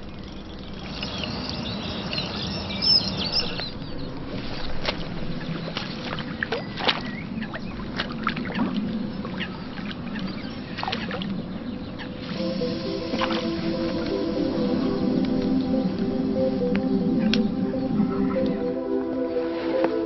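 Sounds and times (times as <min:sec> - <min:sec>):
small birds chirping: 0:00.0 - 0:18.8.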